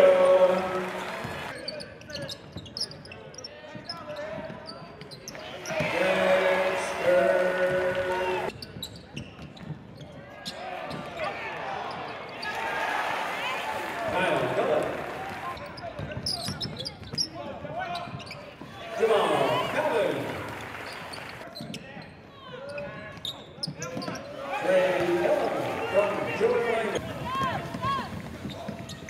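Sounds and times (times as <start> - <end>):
voices calling out: 5.6 - 8.5, 18.8 - 21.4.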